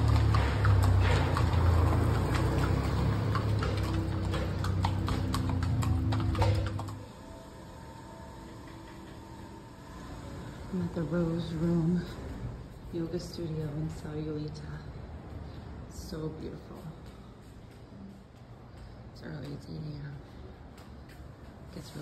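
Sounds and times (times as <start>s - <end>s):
horse hooves on pavement: 0.0s - 7.1s.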